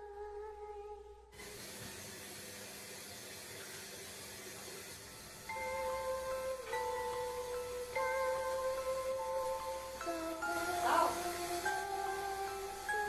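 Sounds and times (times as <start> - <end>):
steady hiss: 1.2 - 13.0
held musical tone: 4.8 - 13.0
bell-like music notes: 5.3 - 13.0.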